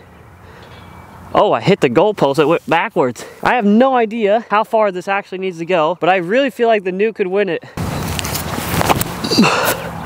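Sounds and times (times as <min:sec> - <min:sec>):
footstep knocks and scuffs: 0:07.8 - 0:09.2.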